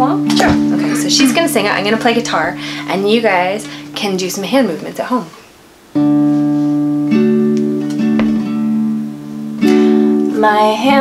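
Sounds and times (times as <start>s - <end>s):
acoustic guitar strummed chords: 0.0s - 4.1s, 5.9s - 11.0s.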